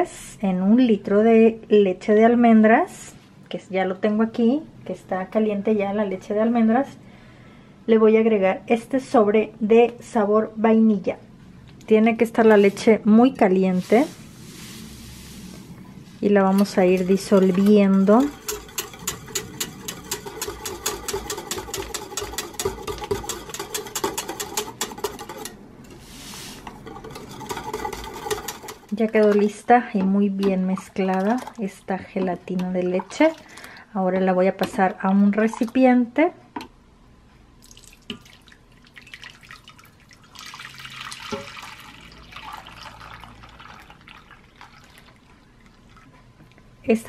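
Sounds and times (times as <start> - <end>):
whisk clinking against steel mug: 16.6 - 25.6, 26.6 - 29.0
liquid pouring into dish: 37.6 - 46.1.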